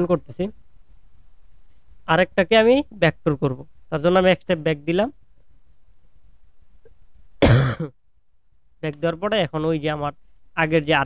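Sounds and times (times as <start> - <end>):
man coughing: 7.4 - 8.0.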